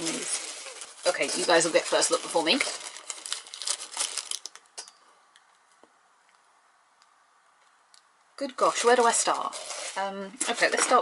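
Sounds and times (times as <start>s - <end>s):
tissue paper crinkling: 0.0s - 4.6s, 8.7s - 11.0s.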